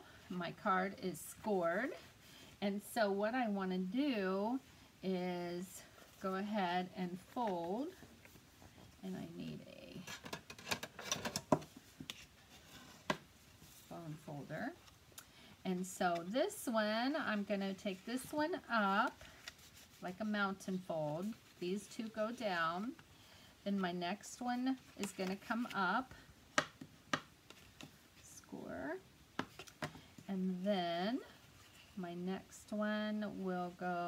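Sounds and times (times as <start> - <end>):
cardstock being folded and creased: 19.1 - 20.1.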